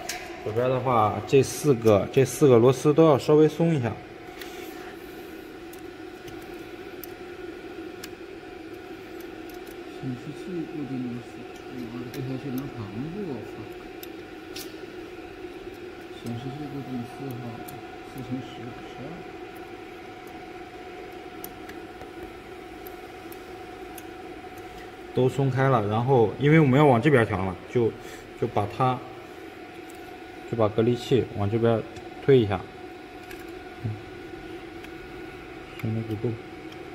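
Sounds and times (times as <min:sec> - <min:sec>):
laser marking machine hum: 0:00.0 - 0:36.9
noisy background: 0:00.0 - 0:36.9.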